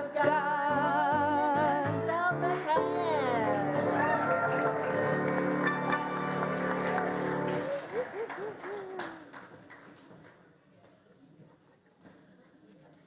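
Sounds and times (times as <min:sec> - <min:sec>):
congregation clapping: 0:02.5 - 0:10.5.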